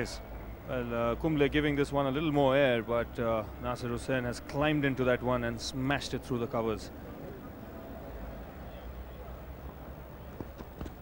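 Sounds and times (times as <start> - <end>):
crowd murmur: 6.5 - 11.0
bowler's footfalls: 10.3 - 11.0.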